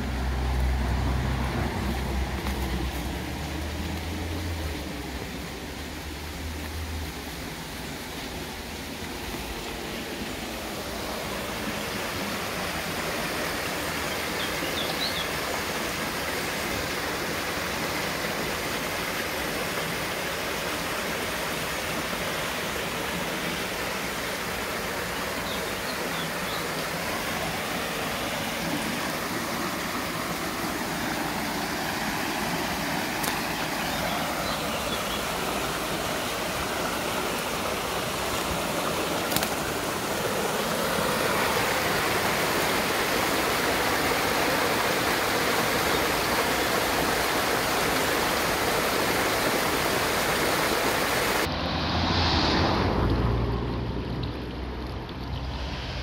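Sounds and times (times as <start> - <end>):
water rushing through a weir: 0.0 - 56.0.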